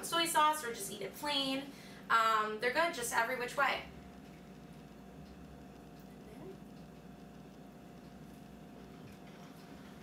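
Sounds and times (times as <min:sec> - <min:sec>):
low hum: 0:03.2 - 0:10.0.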